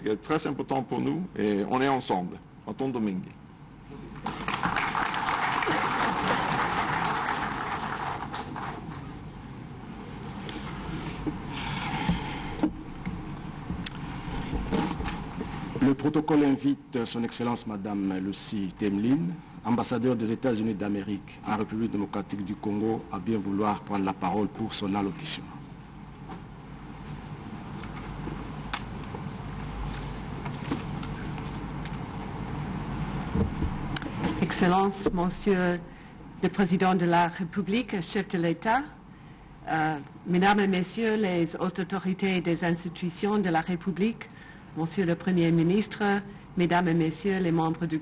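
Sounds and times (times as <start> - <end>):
low rumble of large hall: 0.0 - 48.0
audience applause: 4.2 - 8.9.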